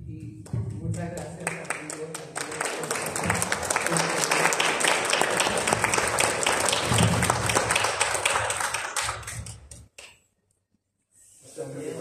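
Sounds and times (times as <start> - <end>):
audience applauding: 1.0 - 10.1.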